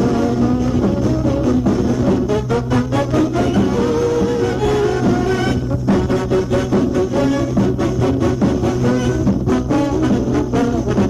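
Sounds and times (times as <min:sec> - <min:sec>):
brass band playing: 0:00.0 - 0:11.0
percussion beat: 0:00.0 - 0:11.0.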